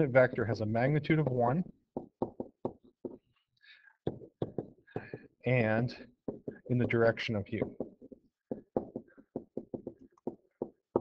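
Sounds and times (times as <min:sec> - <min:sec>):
stylus tapping on writing surface: 0:00.2 - 0:03.3, 0:04.0 - 0:05.3, 0:06.2 - 0:11.0.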